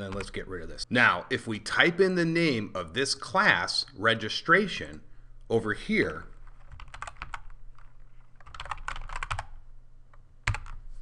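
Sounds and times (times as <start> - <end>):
typing on computer keyboard: 6.4 - 9.6, 10.4 - 10.8.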